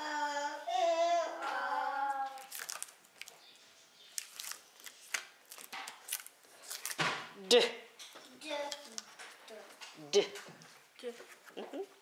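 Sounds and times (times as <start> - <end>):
person humming a vowel: 0.0 - 2.4.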